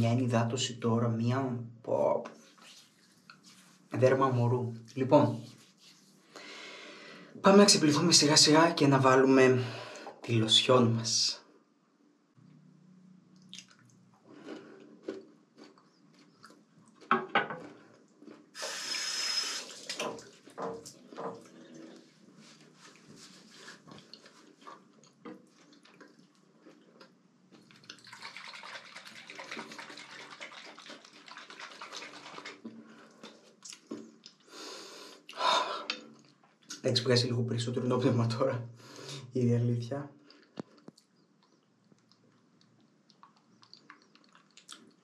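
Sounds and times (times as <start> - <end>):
water splashes and drips: 19.6 - 21.5, 27.6 - 33.8.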